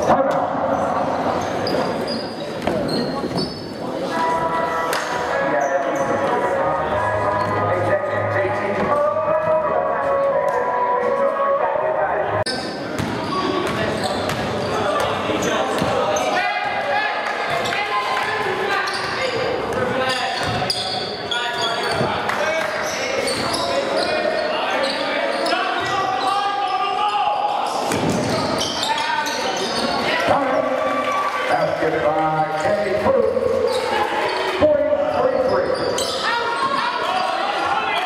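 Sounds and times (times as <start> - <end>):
crowd voices and shouts: 0.0 - 38.0.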